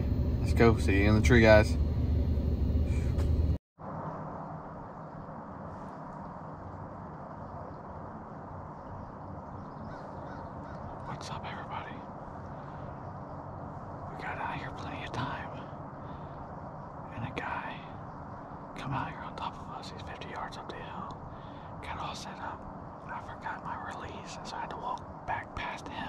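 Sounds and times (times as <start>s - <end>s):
loud low rumble: 0.0s - 5.8s
quiet woodland background: 3.8s - 26.0s
crow cawing: 9.8s - 11.2s.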